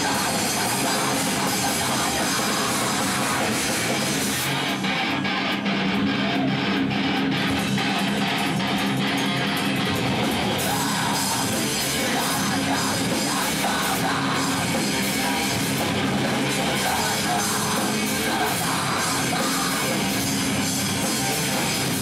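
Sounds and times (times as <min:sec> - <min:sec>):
extreme metal band playing live: 0:00.0 - 0:22.0.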